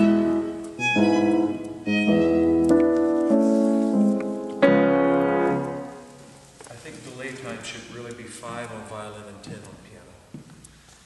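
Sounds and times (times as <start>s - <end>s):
violin and piano chord: 0.0s - 6.0s.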